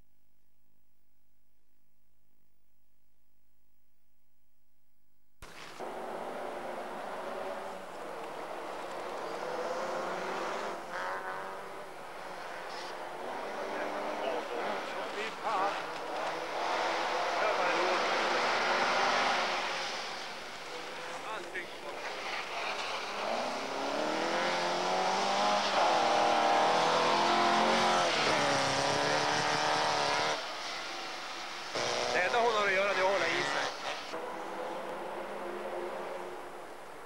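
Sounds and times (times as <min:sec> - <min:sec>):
car engine revving hard: 0:05.8 - 0:20.4, 0:22.1 - 0:36.3.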